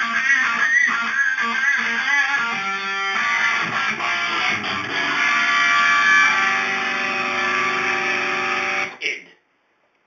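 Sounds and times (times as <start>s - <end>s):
electric guitar chord ringing: 0.0s - 9.0s.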